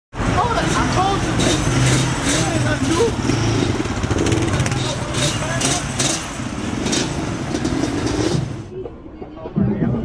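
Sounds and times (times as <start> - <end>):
people talking: 0.3 - 3.2, 4.2 - 6.2
atv engine idling: 0.4 - 8.3.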